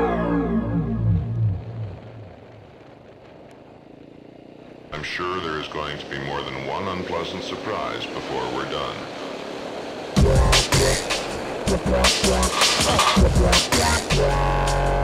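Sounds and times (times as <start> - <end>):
person's voice: 5.0 - 9.1.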